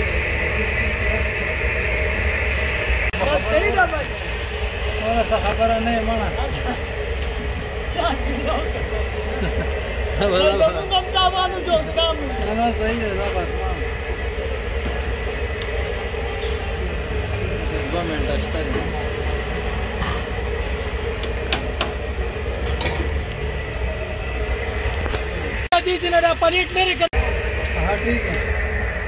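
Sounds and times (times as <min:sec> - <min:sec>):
low steady rumble: 0:00.0 - 0:29.0.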